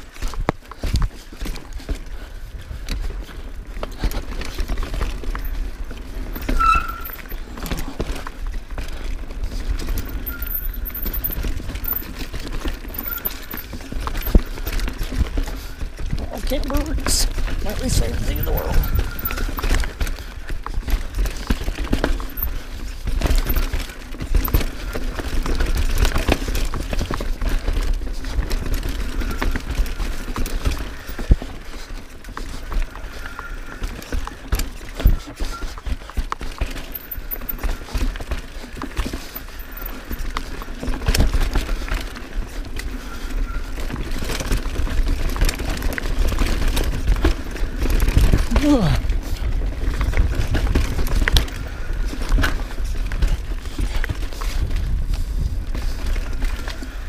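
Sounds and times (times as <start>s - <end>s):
bike clacking and rattling: 0.0s - 57.0s
bike tyres rumbling on dirt: 0.0s - 57.0s
wind on microphone: 17.8s - 19.6s.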